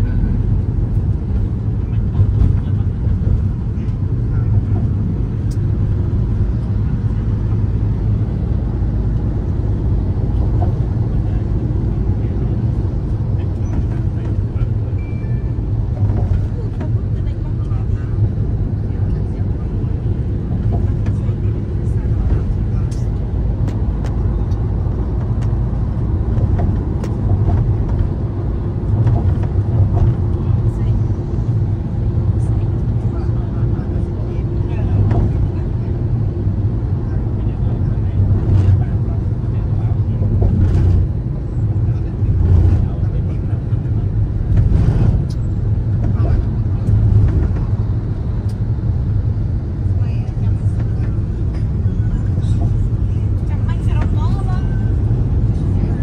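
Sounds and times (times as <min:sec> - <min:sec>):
car engine and tyre noise: 0:00.0 - 0:56.0.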